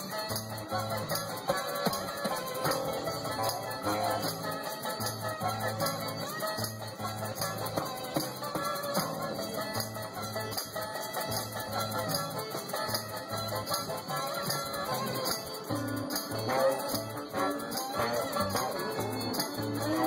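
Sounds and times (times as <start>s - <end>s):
acoustic guitar: 0.0s - 20.0s
shaker rhythm: 0.0s - 20.0s.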